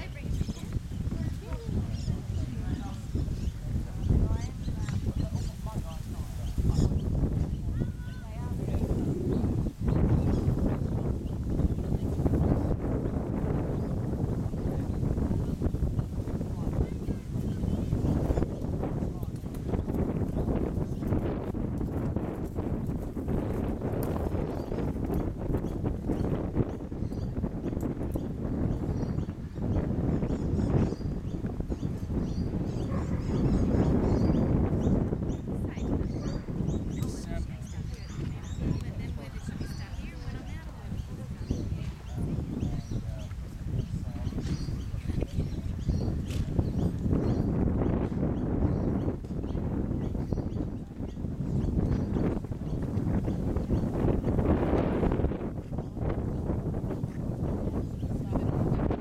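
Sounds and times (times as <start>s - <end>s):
birds chirping: 0.0s - 59.0s
wind rumble on microphone: 0.0s - 59.0s
horse cantering on grass: 16.8s - 26.2s.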